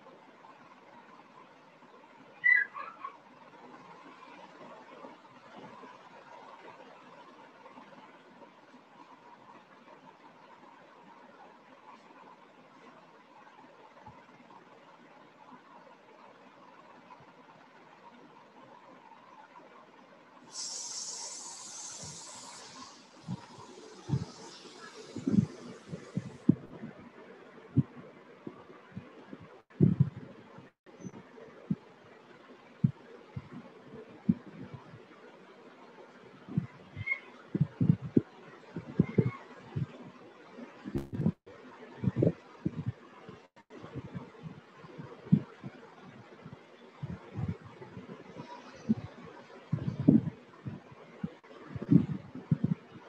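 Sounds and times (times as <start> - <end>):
faint steady hiss: 3.2 - 29.8
dull low thuds: 29.7 - 30.3, 41.0 - 41.4.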